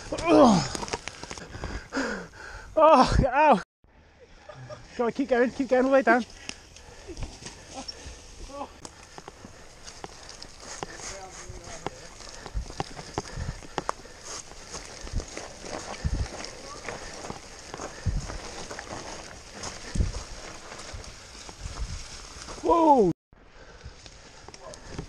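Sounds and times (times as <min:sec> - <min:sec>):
bike tyres on dirt and leaves: 0:00.0 - 0:02.6, 0:05.0 - 0:25.0.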